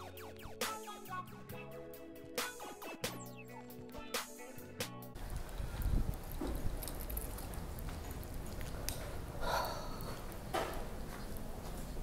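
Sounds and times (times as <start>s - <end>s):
phone microphone handling rumble: 5.2s - 9.2s
footsteps on tiled floor: 5.2s - 12.0s.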